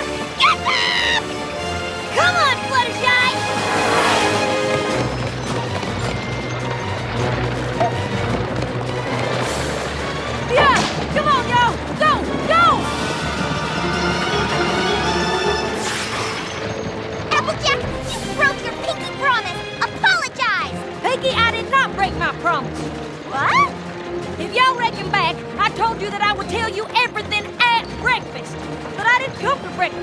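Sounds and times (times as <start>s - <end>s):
cartoon chase music: 0.0s - 30.0s.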